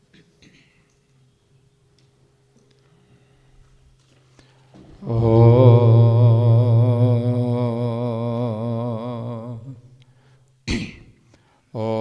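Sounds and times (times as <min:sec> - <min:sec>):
man chanting low syllable: 0:05.0 - 0:09.9, 0:11.8 - 0:12.0.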